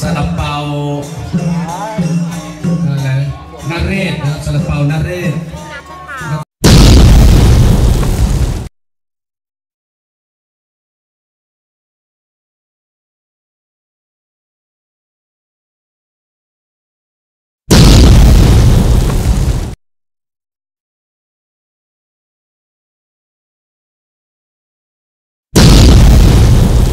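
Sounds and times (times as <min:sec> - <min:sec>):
loud burst of noise: 0:06.6 - 0:08.7, 0:17.7 - 0:19.8, 0:25.6 - 0:26.9
loud rough blast of noise: 0:06.6 - 0:08.7, 0:17.7 - 0:19.8, 0:25.6 - 0:26.9.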